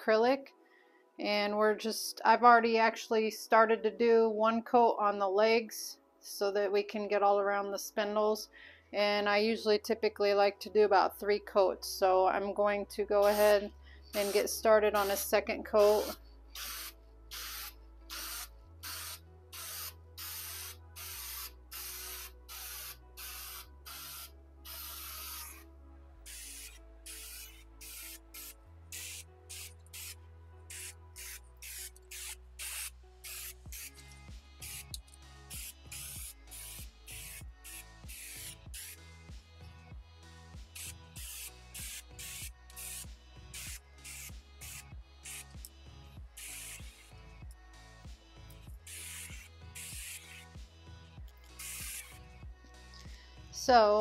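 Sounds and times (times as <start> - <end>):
background music: 0.0 - 54.0
spray can hissing bursts: 14.2 - 15.2, 15.8 - 25.6, 26.3 - 39.0, 40.7 - 45.6, 46.4 - 47.1, 48.9 - 50.4, 51.5 - 52.2.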